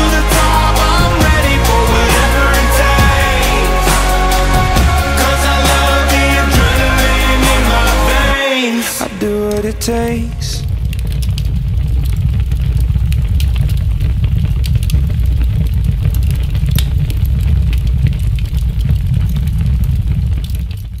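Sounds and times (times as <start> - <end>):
loud low rumble: 0.0 - 8.4, 9.0 - 20.6.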